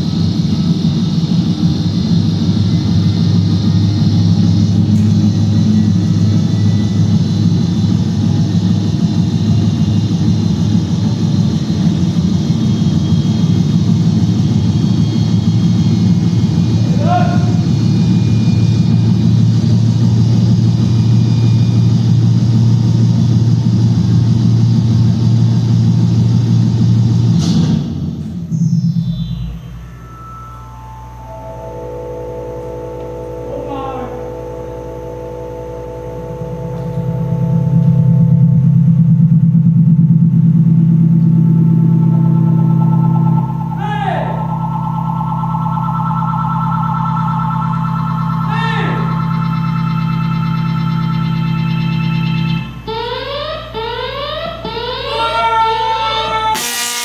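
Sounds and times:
sustained electronic tones: 0.0 - 27.2, 28.2 - 57.0
low electrical hum: 0.0 - 57.0
falling pitch sweeps: 28.2 - 57.0.

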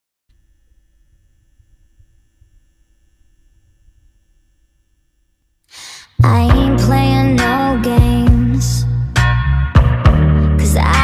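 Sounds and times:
faint steady hum: 0.3 - 8.6.

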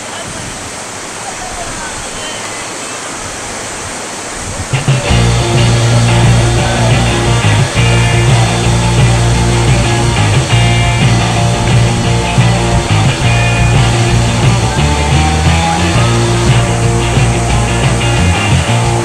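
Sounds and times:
whitewater rapids rushing: 0.0 - 19.0
music with heavy bass: 4.8 - 19.0.

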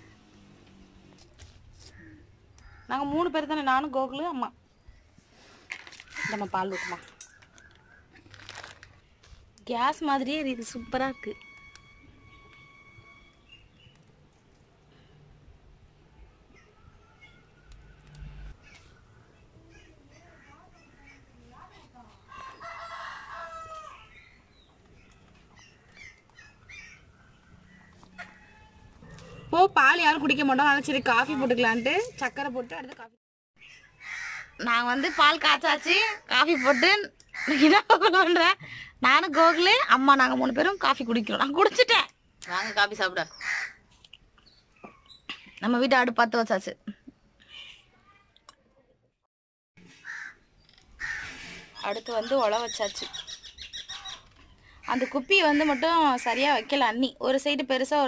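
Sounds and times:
woman speaking: 2.9 - 4.6, 6.2 - 7.1, 9.6 - 11.4, 29.5 - 33.2, 34.6 - 43.3, 51.8 - 53.2, 54.9 - 58.0
crow cawing: 6.1 - 7.2, 34.0 - 35.4, 36.5 - 37.7, 43.4 - 43.8, 49.9 - 51.5
rooster crowing: 22.3 - 24.1.

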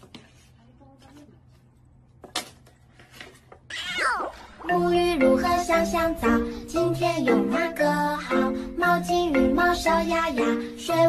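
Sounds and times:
cat meowing: 3.7 - 4.3
music: 4.6 - 11.0.

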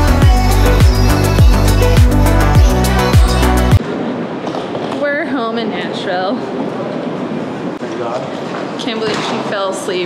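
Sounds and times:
airport terminal hall hum: 3.8 - 10.0.

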